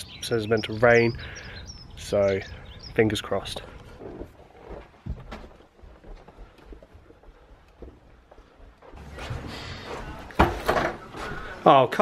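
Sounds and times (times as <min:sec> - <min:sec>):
footsteps on carpet: 0:04.1 - 0:10.3.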